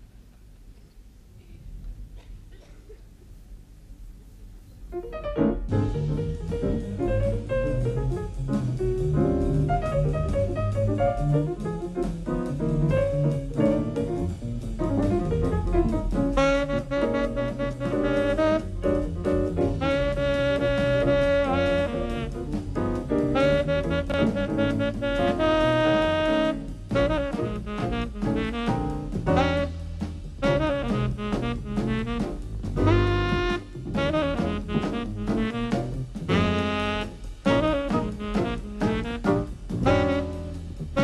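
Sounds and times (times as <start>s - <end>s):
jazz band playing: 4.8s - 41.0s
tenor saxophone held notes: 16.3s - 41.0s.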